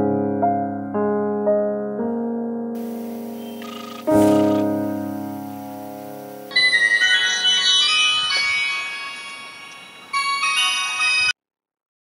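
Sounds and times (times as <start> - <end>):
held keyboard chord: 2.8 - 11.3
mobile phone ringtone: 6.5 - 11.4.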